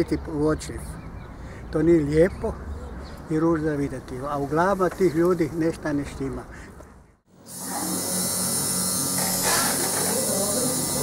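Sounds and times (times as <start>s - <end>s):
tattoo machine buzzing: 7.3s - 11.0s.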